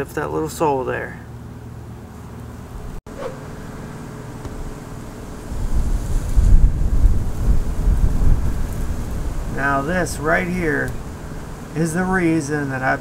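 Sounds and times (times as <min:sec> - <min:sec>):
wind buffeting microphone: 0:05.4 - 0:12.4.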